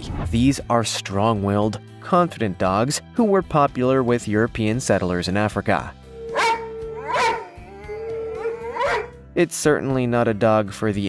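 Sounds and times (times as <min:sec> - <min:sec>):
dogs howling: 0:06.0 - 0:09.2.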